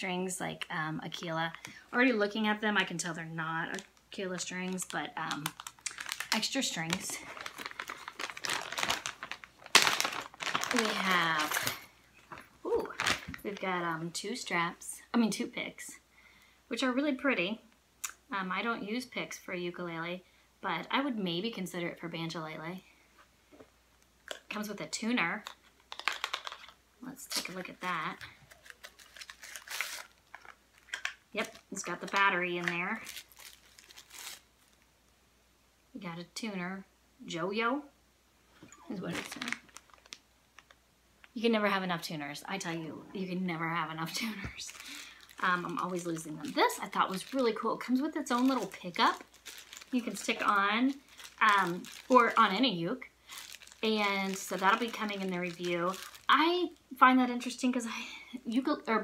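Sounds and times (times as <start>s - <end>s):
plastic packaging crinkling: 1.1s - 13.8s, 25.4s - 34.9s, 38.8s - 41.4s, 43.6s - 56.8s.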